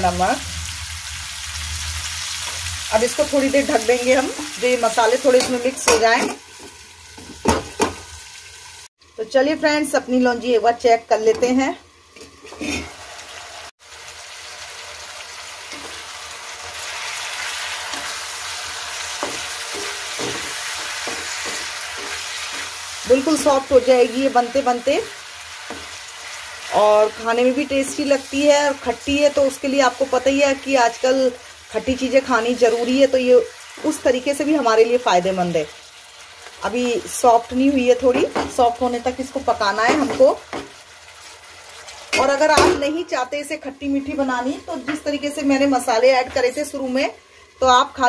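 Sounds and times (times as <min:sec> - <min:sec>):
fruit slices sizzling in oil: 0:00.0 - 0:48.0
spatula tapping pan: 0:19.2 - 0:22.7.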